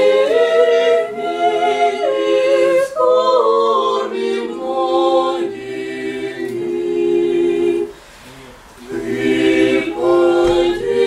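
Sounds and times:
choir singing church chant: 0.0 - 11.0.

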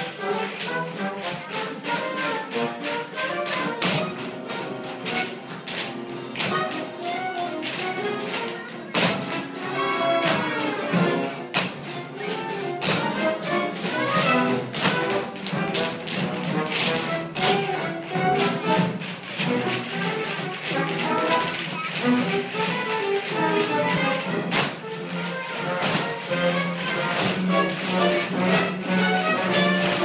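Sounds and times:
accompanying music: 0.0 - 30.0
tap shoes striking floor: 0.0 - 30.0.

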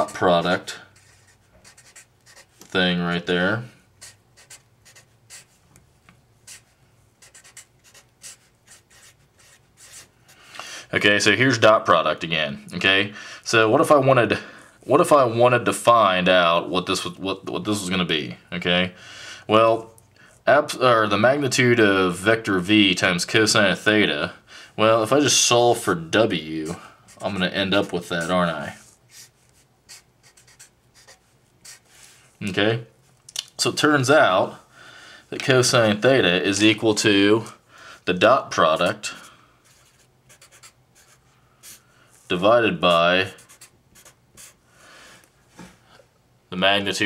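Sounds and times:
marker scratching on paper: 1.0 - 2.7, 4.0 - 5.6, 6.4 - 10.2, 27.1 - 31.9, 39.6 - 41.8, 42.9 - 44.6.

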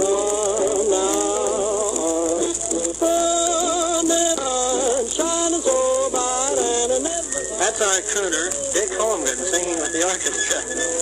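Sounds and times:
record surface hiss: 0.0 - 11.0.

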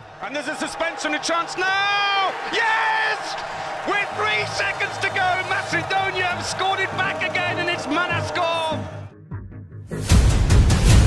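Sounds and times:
excited shouting voices: 0.1 - 9.0.

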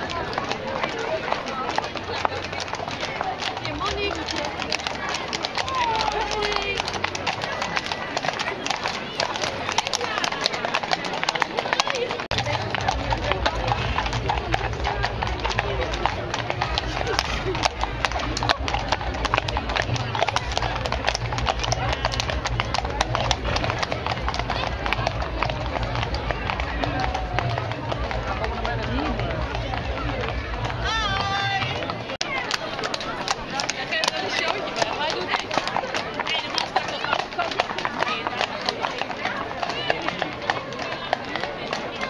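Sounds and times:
crowd chattering: 0.0 - 42.0
horse hooves clip-clopping on pavement: 0.0 - 42.0.

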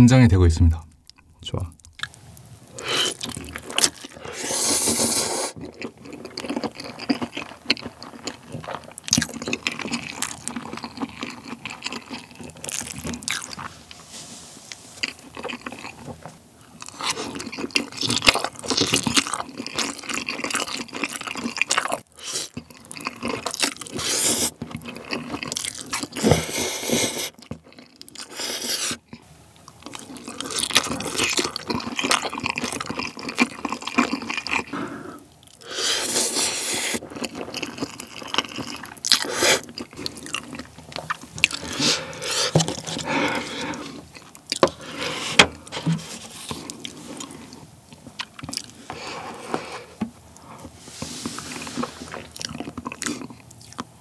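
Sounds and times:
slurping and chewing noodles: 2.0 - 53.9.

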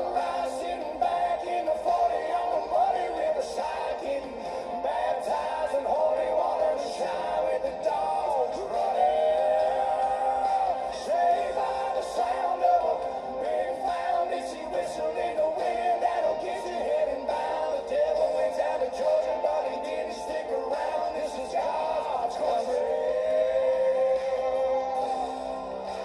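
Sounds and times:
man singing country song: 0.0 - 26.0.

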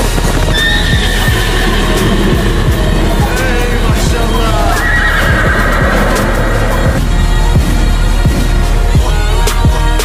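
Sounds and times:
music with heavy beat: 0.1 - 10.0
horse whinnying: 0.5 - 7.1.

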